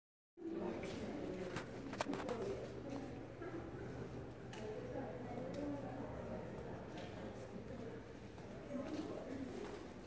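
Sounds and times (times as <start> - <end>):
faint indistinct voices talking: 0.4 - 10.0.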